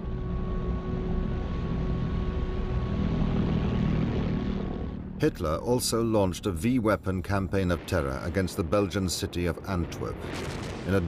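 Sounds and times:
pulsejet engine drone: 0.0 - 9.3.

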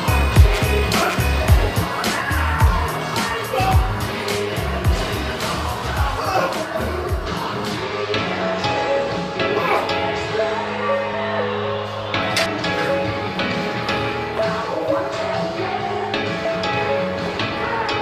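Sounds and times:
song with steady beat: 0.0 - 8.4.

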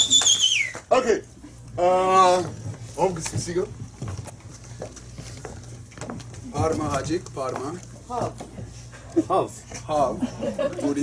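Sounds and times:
steady low hum: 0.0 - 11.0
footsteps on wooden floor: 2.2 - 8.8.

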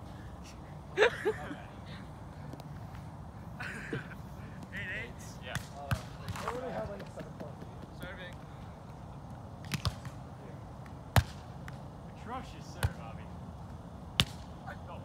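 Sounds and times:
volleyball hits: 5.5 - 8.2, 9.6 - 10.2, 10.8 - 11.8, 14.2 - 14.5.

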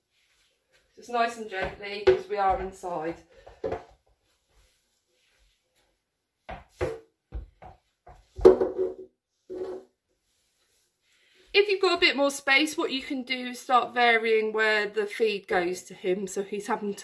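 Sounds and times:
small ball bouncing on floor: 1.6 - 4.0, 6.5 - 9.8.

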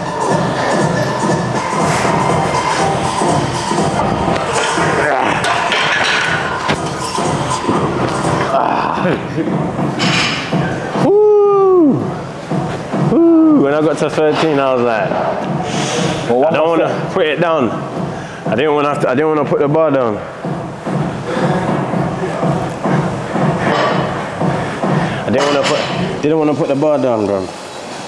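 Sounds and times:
background music: 0.0 - 27.0.

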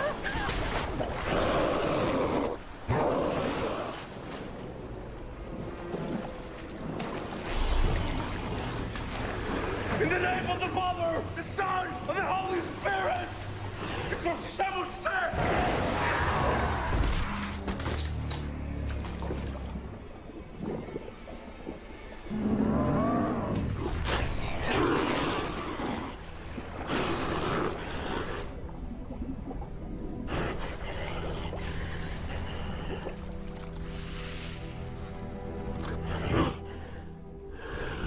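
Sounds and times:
deep monstrous growling roar: 1.1 - 4.1, 15.3 - 17.6, 22.3 - 26.2.

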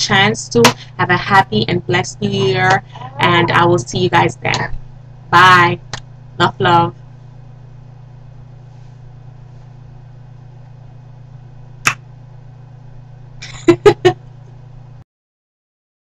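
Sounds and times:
low electrical hum: 0.0 - 15.0
woman laughing: 2.2 - 3.8, 13.4 - 14.2.

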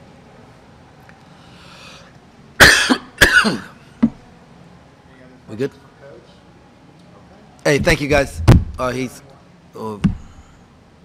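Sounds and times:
man coughing: 2.6 - 3.8.

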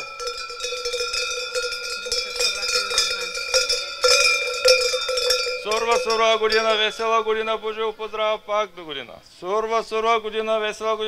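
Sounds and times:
metal bells clanging: 0.0 - 8.0.

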